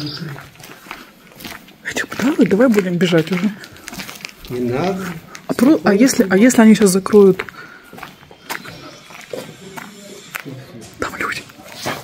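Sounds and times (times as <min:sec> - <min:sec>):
quiet indistinct speech: 0:08.0 - 0:12.0.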